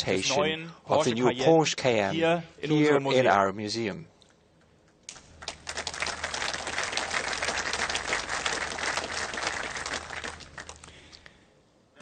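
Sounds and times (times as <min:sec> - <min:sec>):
large audience applauding: 0:05.4 - 0:11.0.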